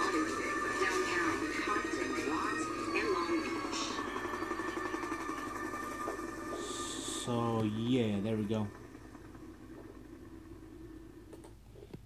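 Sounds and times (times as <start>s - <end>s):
film music with held tones: 0.0s - 12.0s.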